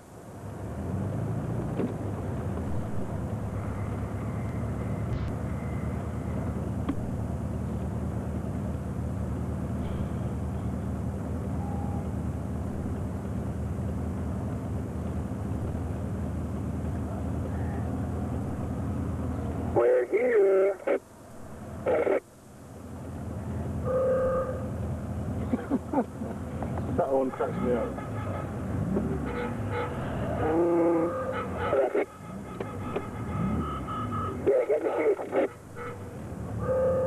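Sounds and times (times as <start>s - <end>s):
car engine idling: 0.0s - 37.0s.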